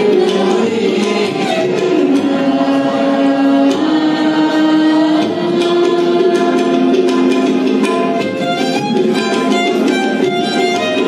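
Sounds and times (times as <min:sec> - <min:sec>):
young voices singing together: 0:00.0 - 0:07.9
tabla: 0:00.0 - 0:11.0
violin: 0:00.0 - 0:11.0.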